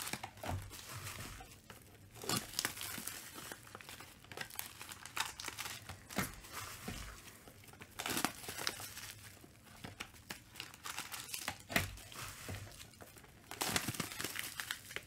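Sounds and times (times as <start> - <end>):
plastic wrapping crinkling: 0.0 - 15.0
sharp plastic crack: 0.0 - 15.0.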